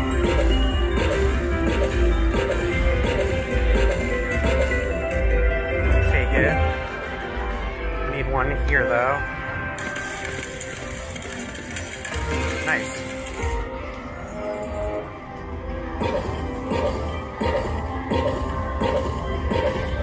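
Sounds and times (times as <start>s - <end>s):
slot machine electronic tones: 0.0s - 7.3s, 8.8s - 20.0s.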